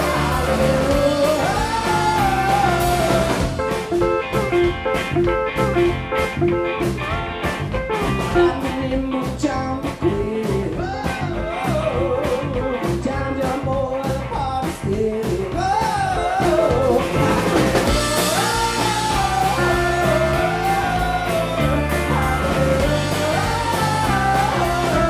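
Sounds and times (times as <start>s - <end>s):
man singing: 0.0s - 4.4s, 8.3s - 25.0s
live rock band playing: 0.0s - 25.0s.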